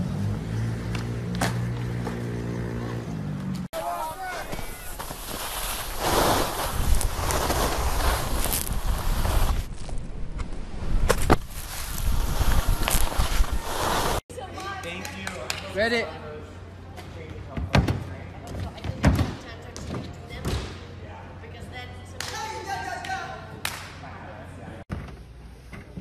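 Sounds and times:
skis scraping on snow: 4.0s - 9.8s, 11.2s - 14.2s
wind rushing over microphone: 5.8s - 14.2s.

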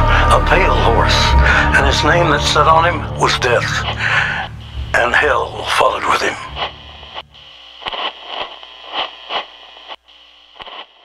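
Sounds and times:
static hiss: 0.0s - 11.0s
crackles and clicks: 1.8s - 11.0s.

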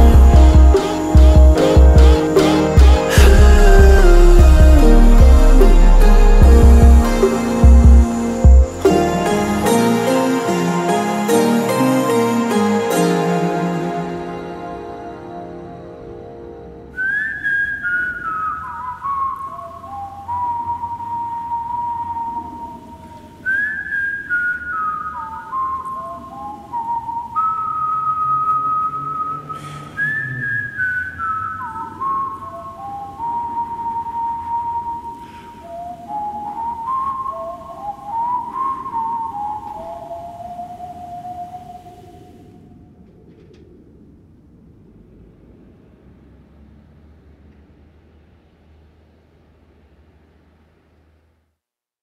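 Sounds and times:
soft low musical backing: 0.0s - 29.5s, 31.3s - 43.0s
person whistling melody: 0.0s - 42.4s.

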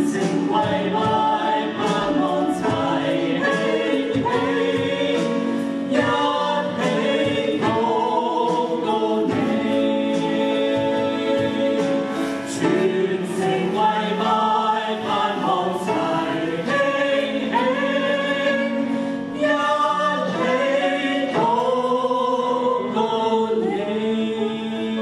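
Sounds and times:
choir singing in harmony: 0.0s - 25.0s.

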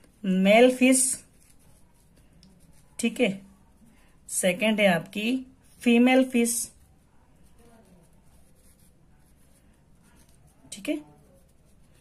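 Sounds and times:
pen scratching on paper: 0.0s - 3.4s, 5.6s - 12.0s.

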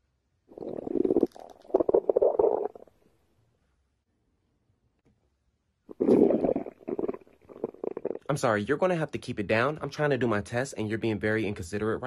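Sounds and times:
stomach growling: 0.5s - 3.0s, 5.9s - 8.3s.

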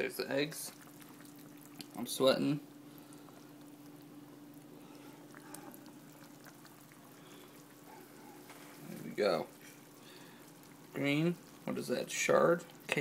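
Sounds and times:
soup bubbling in a pan: 0.0s - 13.0s
steady low hum: 0.0s - 13.0s.

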